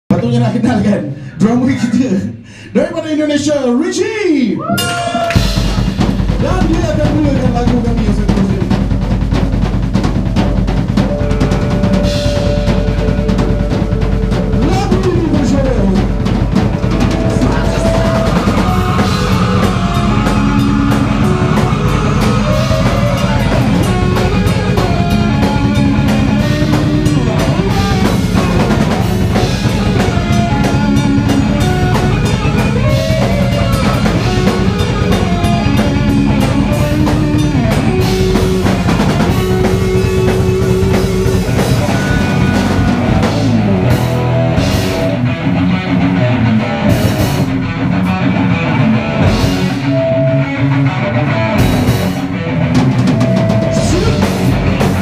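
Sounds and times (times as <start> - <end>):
heavy metal band playing live: 4.7 - 55.0
bending guitar lines: 8.4 - 55.0.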